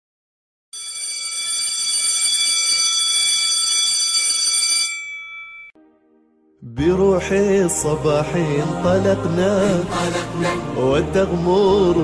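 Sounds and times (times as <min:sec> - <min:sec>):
bell ringing: 0:00.8 - 0:05.8.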